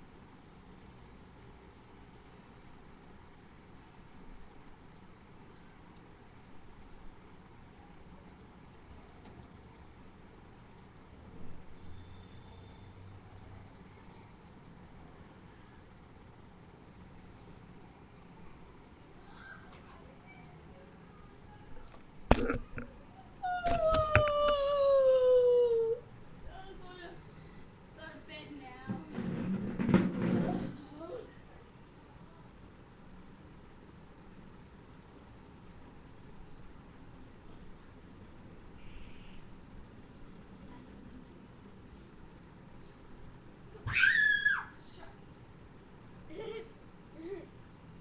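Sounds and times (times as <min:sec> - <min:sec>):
child screaming: 0:23.5 - 0:26.0, 0:43.8 - 0:44.8.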